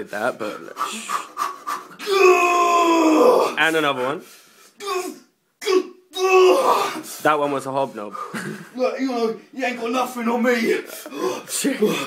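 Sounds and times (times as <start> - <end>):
man panting: 0.6 - 2.0
man straining groan: 2.0 - 3.6, 4.8 - 7.1.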